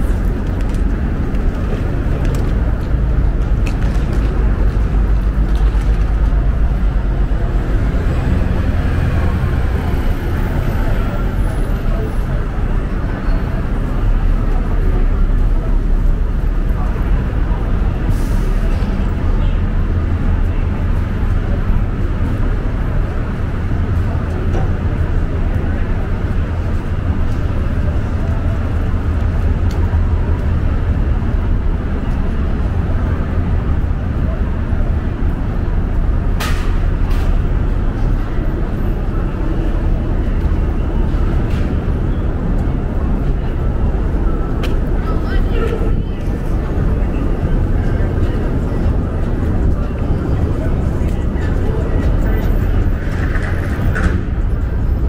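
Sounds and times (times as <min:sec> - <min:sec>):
indistinct voices: 0:00.0 - 0:55.0
low rumble of road traffic: 0:00.0 - 0:55.0.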